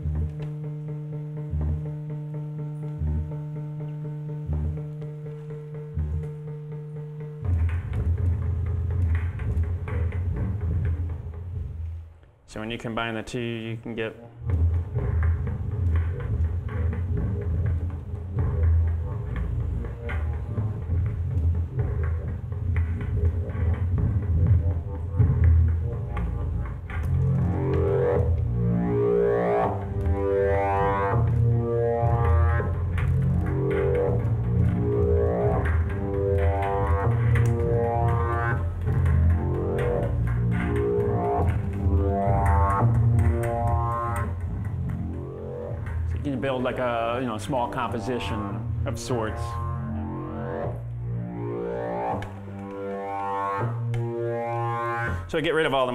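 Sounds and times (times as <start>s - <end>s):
synthesizer low drone: 0.0s - 12.0s, 14.2s - 55.3s
synthesizer rising glides: 24.4s - 46.0s, 47.8s - 55.2s.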